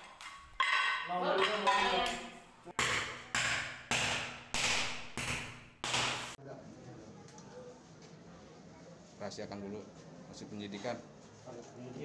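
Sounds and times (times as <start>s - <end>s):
hammer striking chisel: 0.0s - 6.4s.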